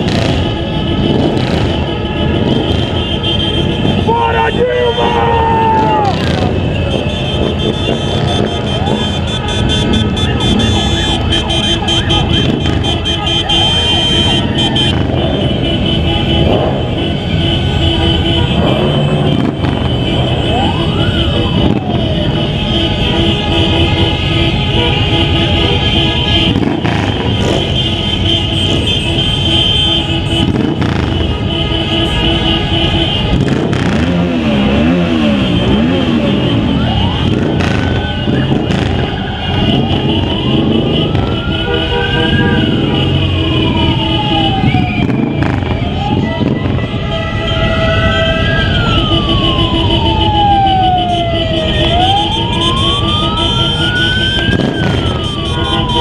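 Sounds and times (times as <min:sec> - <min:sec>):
motorcycle engines running: 0:00.0 - 0:56.0.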